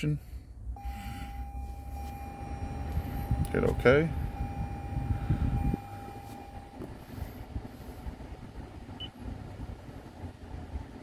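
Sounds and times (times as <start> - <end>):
low rumble: 0.2 - 11.0
steady electronic tone: 0.7 - 7.3.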